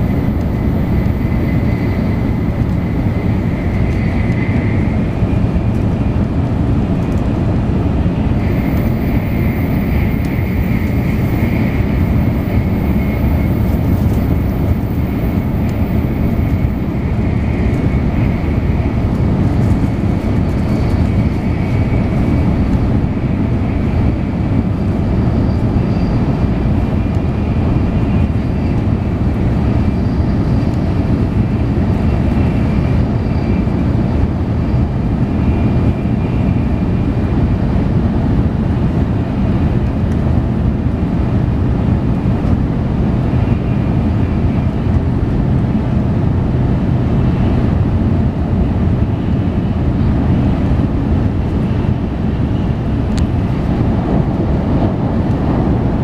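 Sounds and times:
rushing air: 0:00.0 - 0:29.6, 0:46.0 - 0:56.0
train wheels rumbling: 0:00.0 - 0:56.0.

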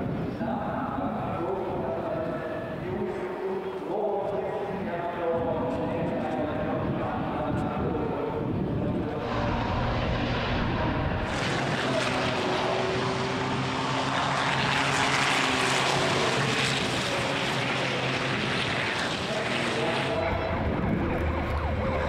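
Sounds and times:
truck engines racing past: 0:09.1 - 0:22.0.

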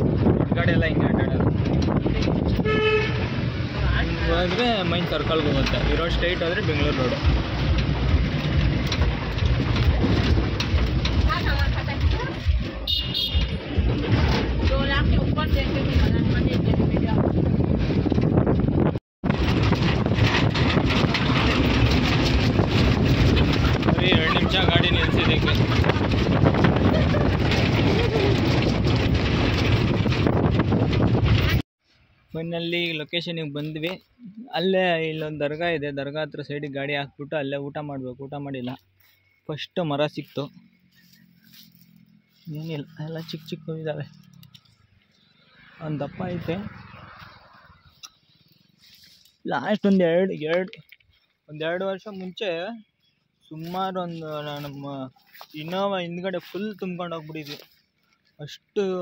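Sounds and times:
wind buffeting microphone: 0:00.0 - 0:31.6, 0:40.6 - 0:48.9
vehicle engine and road rumble: 0:00.0 - 0:59.0
car horn toot: 0:02.6 - 0:03.4, 0:12.8 - 0:13.9.

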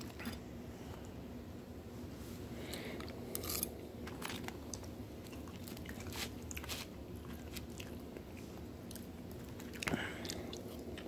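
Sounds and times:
person chewing food: 0:02.8 - 0:11.0.

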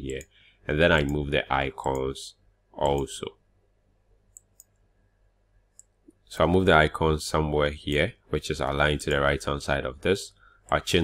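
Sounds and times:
faint computer mouse clicks: 0:04.3 - 0:04.8.

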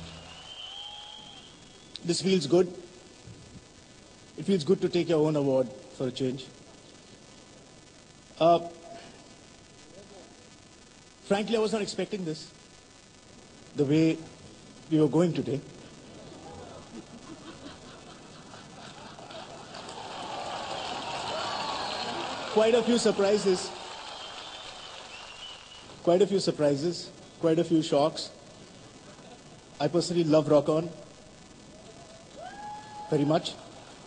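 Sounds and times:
faint rising tone: 0:00.0 - 0:00.7
audience applause: 0:00.0 - 0:01.5, 0:18.5 - 0:26.0.

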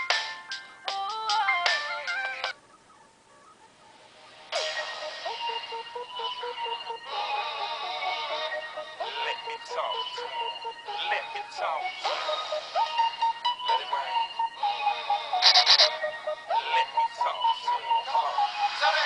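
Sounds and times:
pop music through small speaker: 0:00.0 - 0:19.0.

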